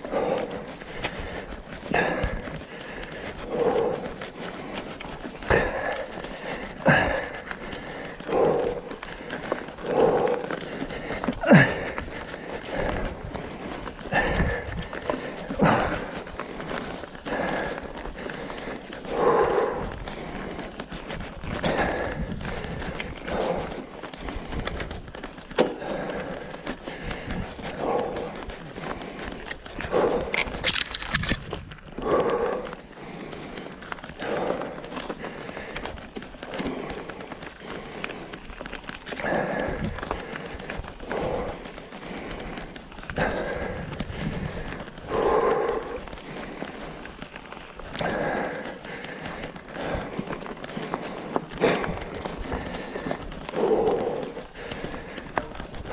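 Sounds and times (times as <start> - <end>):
bike tyres rolling over dirt: 0.0 - 55.9
heavy breathing: 0.0 - 55.9.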